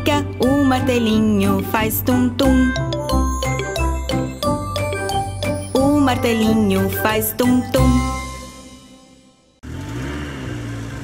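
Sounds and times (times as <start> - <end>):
children's jingle: 0.0 - 9.6.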